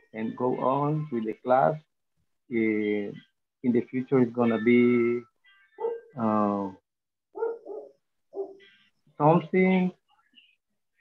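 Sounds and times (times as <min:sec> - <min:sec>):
small dog barking: 0:05.8 - 0:06.1, 0:07.4 - 0:08.6.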